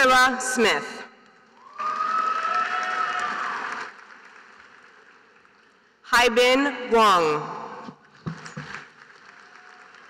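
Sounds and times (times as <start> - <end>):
audience clapping: 1.4 - 6.0, 8.2 - 10.0
long held cheer: 1.6 - 4.0.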